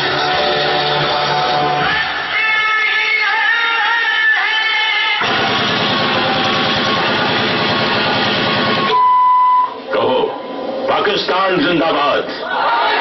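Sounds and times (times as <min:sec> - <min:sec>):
dense dance-drama soundtrack: 0:05.2 - 0:08.9
steady beep tone: 0:08.6 - 0:09.8.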